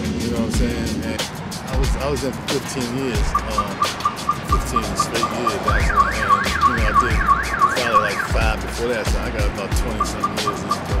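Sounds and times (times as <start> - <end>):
music beat with kick drum: 0.0 - 11.0
electronic siren yelping: 3.3 - 8.4, 9.9 - 11.0.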